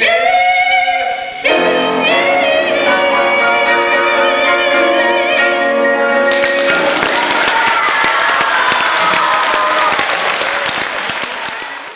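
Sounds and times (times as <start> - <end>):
audience applauding: 6.3 - 11.9.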